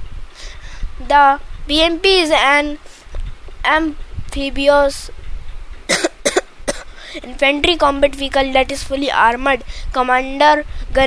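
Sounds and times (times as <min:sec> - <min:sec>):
person coughing: 0:05.9 - 0:07.0.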